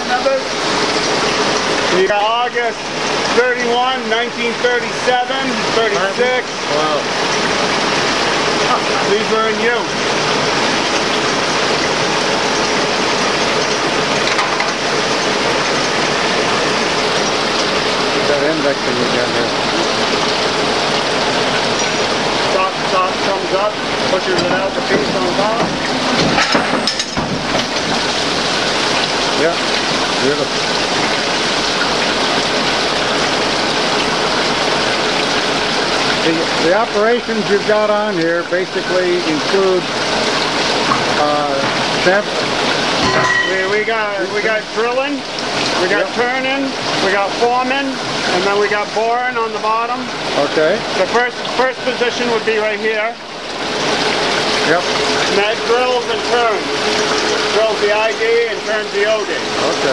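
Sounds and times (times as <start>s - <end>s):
cutting oil pouring and splashing: 0.0s - 59.9s.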